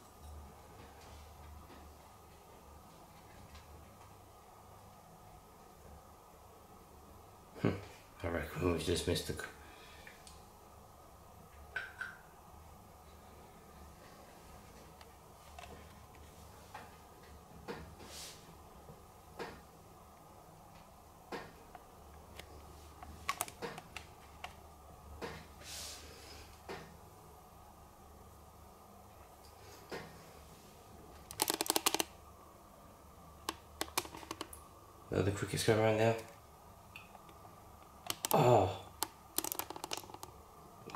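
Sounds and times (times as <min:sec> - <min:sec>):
low steady hum: 0:00.0 - 0:40.9
small sharp clicks and taps: 0:31.3 - 0:32.1, 0:33.4 - 0:34.6, 0:37.0 - 0:38.4, 0:39.0 - 0:40.3.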